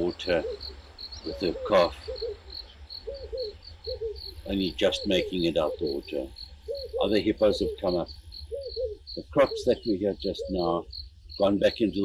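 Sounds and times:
crickets chirping: 0.0s - 12.0s
soft low animal calls: 0.0s - 12.0s.

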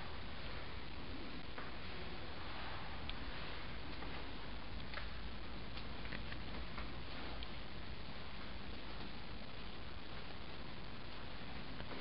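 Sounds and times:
recording hiss: 0.0s - 12.0s
faint irregular clicks: 3.9s - 7.6s.

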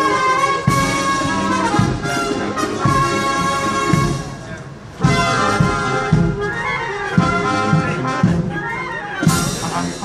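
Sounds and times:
brass band playing a march: 0.0s - 10.0s.

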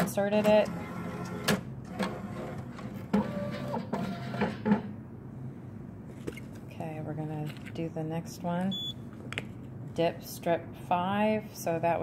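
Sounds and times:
mechanical hum: 0.0s - 12.0s.

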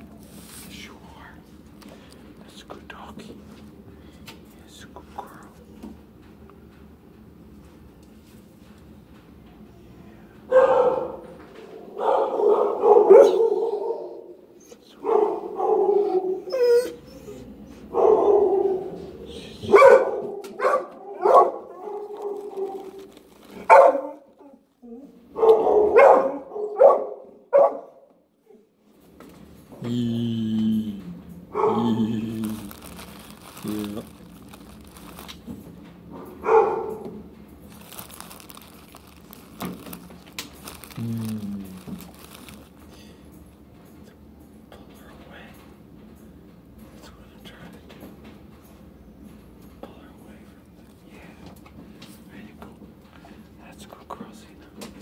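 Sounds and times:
dog woofing and whining: 15.6s - 19.0s, 19.6s - 27.0s, 31.5s - 32.3s.

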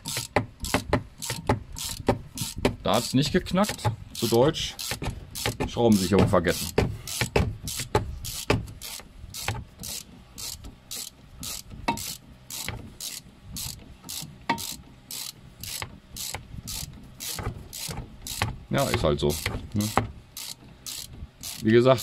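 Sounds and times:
hand ratchet clicking: 0.0s - 22.0s.

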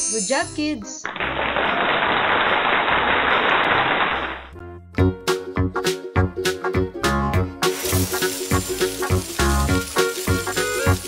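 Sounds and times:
many hands clapping: 1.0s - 4.5s.

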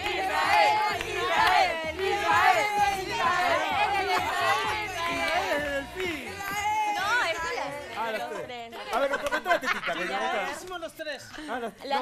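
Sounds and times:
crowd shouting and cheering: 0.0s - 8.4s.

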